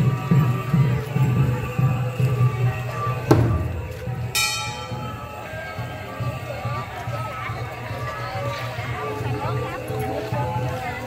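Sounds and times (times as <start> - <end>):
metal bell strike ringing: 4.3 - 5.4.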